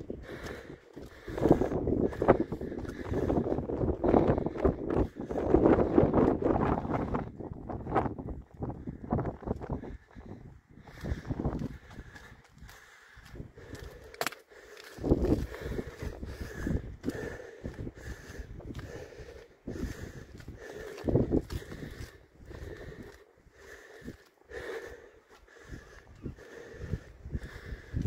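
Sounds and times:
footsteps on concrete: 0:00.0 - 0:05.2, 0:10.9 - 0:26.7
wind rumbling on microphone: 0:00.0 - 0:28.0.

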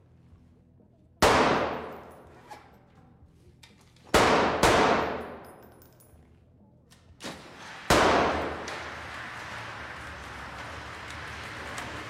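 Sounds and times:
handgun shots echoing: 0:01.2 - 0:02.2, 0:04.1 - 0:05.8, 0:07.2 - 0:08.6.

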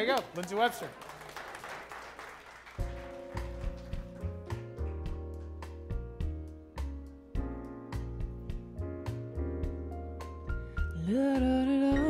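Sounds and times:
applause: 0:00.0 - 0:05.9.

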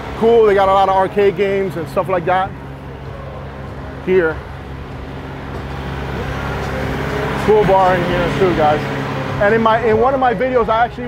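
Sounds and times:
truck engine humming: 0:00.0 - 0:11.0.

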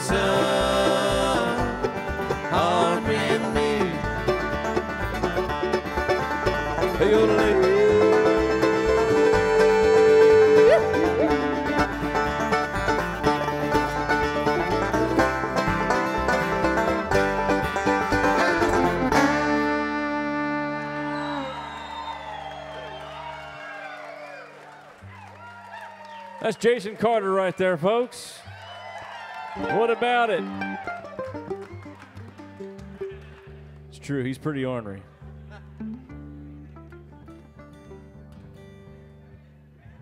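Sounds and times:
bluegrass band playing: 0:00.0 - 0:22.2, 0:28.6 - 0:39.7.

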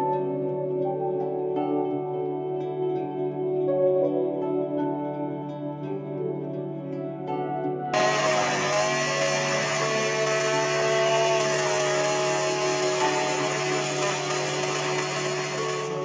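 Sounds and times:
blender motor whining: 0:08.0 - 0:16.0.

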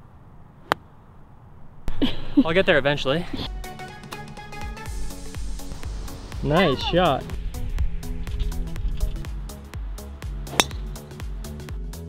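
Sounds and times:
electronic music with beat: 0:04.6 - 0:12.0
golf driver striking ball: 0:10.5 - 0:11.0.

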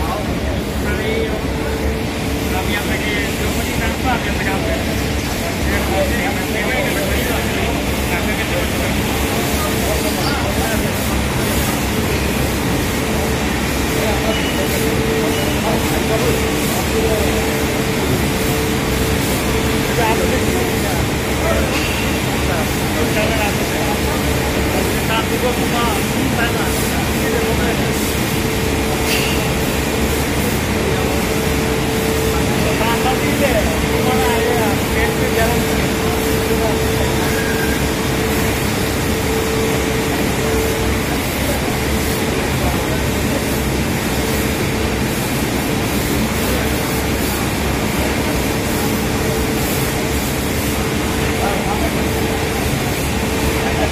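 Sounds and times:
loud mechanical hum: 0:00.0 - 0:53.9.

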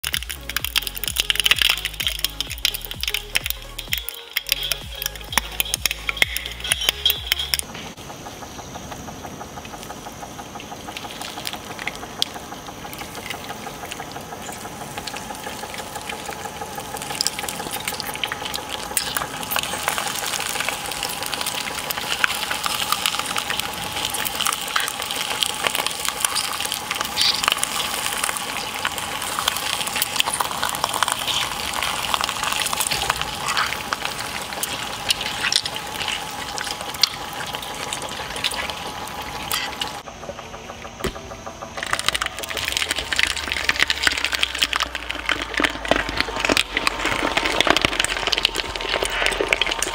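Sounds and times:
background music with bass line: 0:00.0 - 0:07.7
clicks: 0:00.0 - 0:08.0
shredder grinding and crackling: 0:00.0 - 0:49.9.

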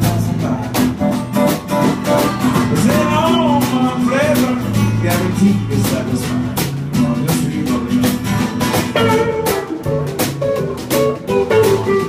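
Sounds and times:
drum kit steady beat: 0:00.0 - 0:12.0
electric guitar: 0:00.0 - 0:12.0
strummed acoustic guitar: 0:00.0 - 0:12.0.

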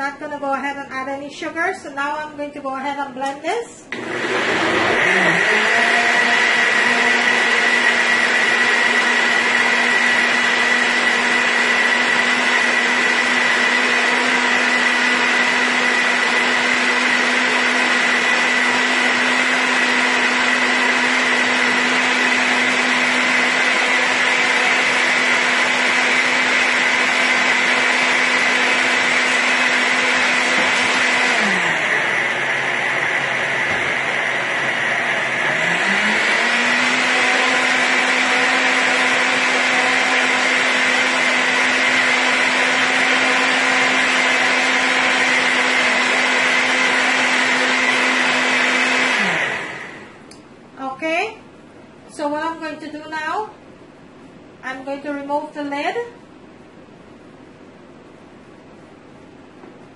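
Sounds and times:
blender motor running: 0:03.9 - 0:50.4.

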